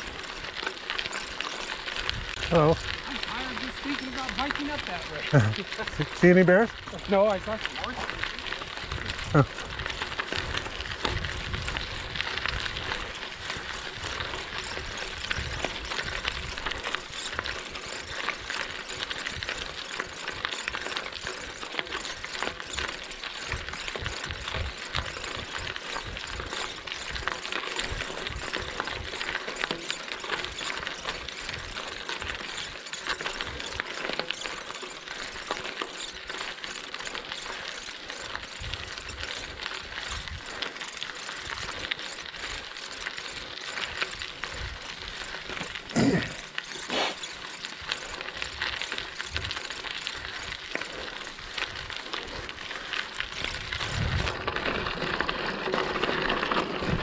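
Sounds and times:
rapid hub ratchet ticking: 0.0 - 57.0
tyres crunching on gravel: 0.0 - 57.0.

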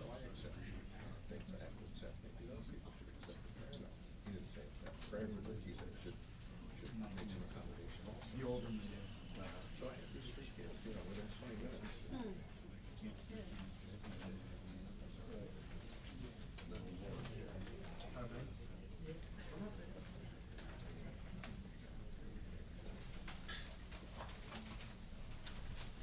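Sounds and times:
murmur of people talking: 0.0 - 26.0.

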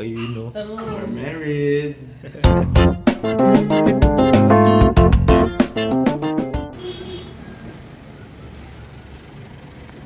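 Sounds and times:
outdoor background noise: 6.8 - 10.0.

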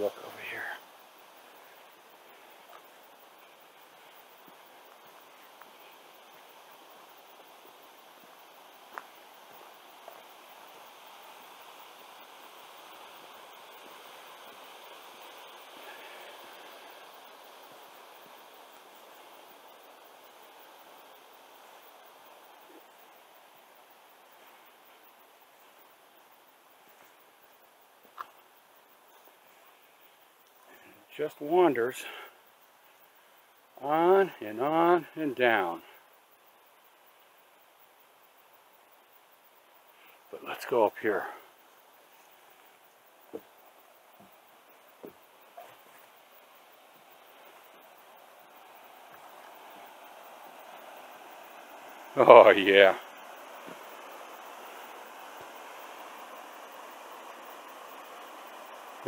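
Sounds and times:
creek flowing over rock: 43.2 - 59.0.

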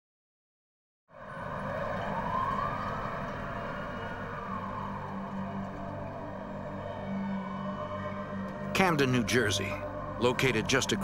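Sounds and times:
emergency siren wailing: 1.2 - 11.0.

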